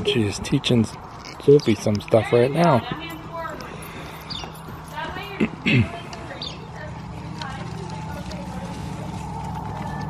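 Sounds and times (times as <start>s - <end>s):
horse hoofbeats on sand: 1.6s - 10.0s
steady low hum: 2.8s - 10.0s.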